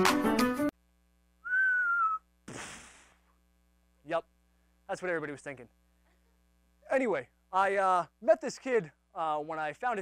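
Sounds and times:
person whistling: 1.4 - 2.3.

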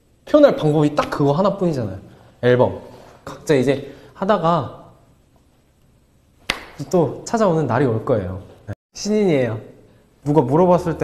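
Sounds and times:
man speaking: 0.2 - 5.0, 6.8 - 11.0.

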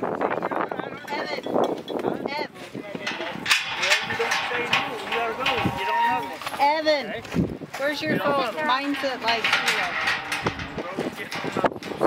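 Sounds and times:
people talking indistinctly: 0.3 - 12.0.

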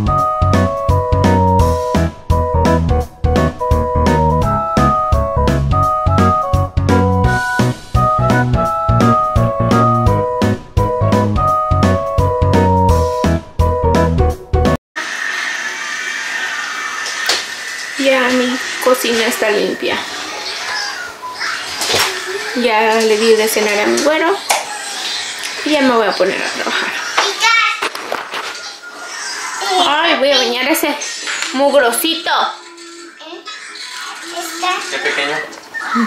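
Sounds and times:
television background music: 0.0 - 14.0, 17.6 - 36.0
voices from television: 18.0 - 36.0.

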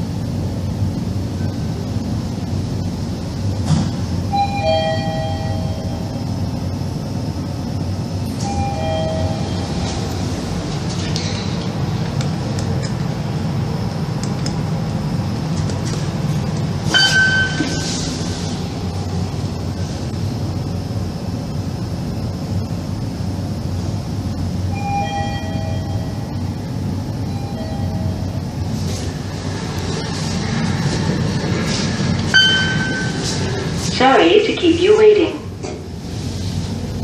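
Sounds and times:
elevator car low hum: 0.0 - 37.0
short electronic beep: 16.9 - 18.0, 32.3 - 33.3.

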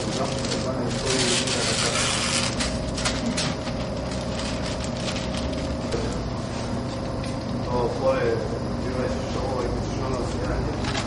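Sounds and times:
background hum and rumble: 0.0 - 11.0.

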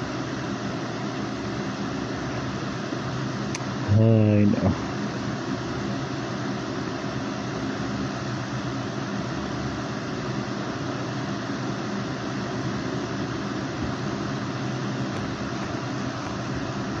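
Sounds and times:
machine hum with hiss: 0.0 - 17.0.

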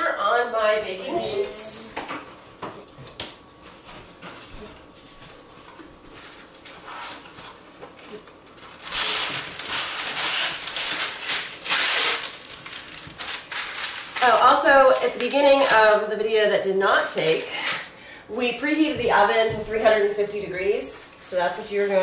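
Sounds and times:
parchment paper rustling and tearing: 6.1 - 16.1.

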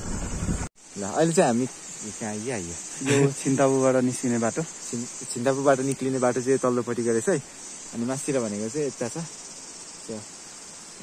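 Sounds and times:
insects droning: 0.0 - 11.0.

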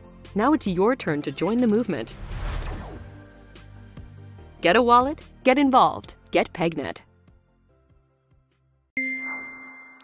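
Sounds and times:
bright electronic chime: 9.0 - 10.0.

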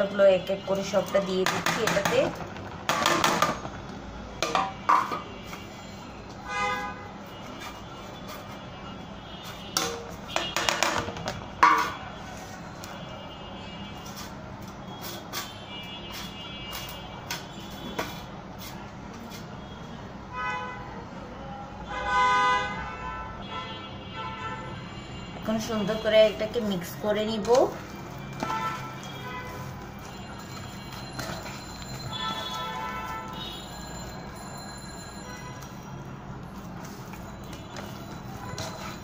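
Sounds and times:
vehicle horn: 4.6 - 10.8, 19.6 - 21.0, 21.8 - 26.2, 28.2 - 31.4, 32.1 - 33.8.

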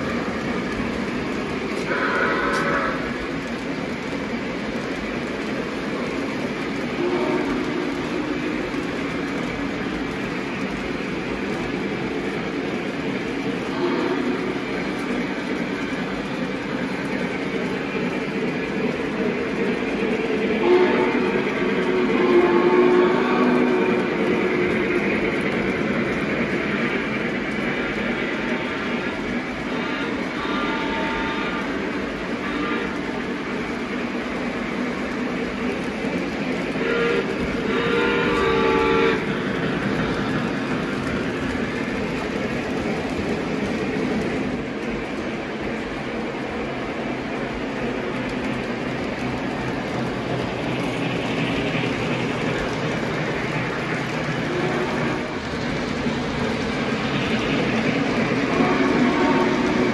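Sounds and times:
model trains rumbling on track: 0.0 - 59.9
train horn blowing: 1.8 - 3.1, 7.0 - 8.7, 13.7 - 14.5, 20.6 - 24.2, 29.7 - 31.8, 32.4 - 33.0, 36.8 - 39.2, 54.5 - 55.4, 58.5 - 59.9.

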